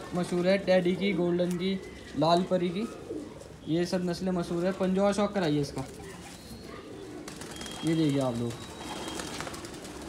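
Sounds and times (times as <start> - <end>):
pigeons cooing: 0.0 - 10.0.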